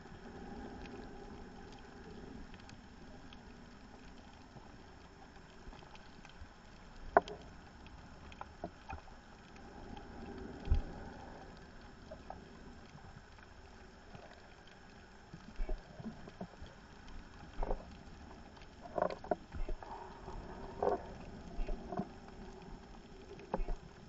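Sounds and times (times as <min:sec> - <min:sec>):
faint ticks: 0:00.0 - 0:24.0
underwater regulator bubbles rumbling: 0:00.0 - 0:24.0.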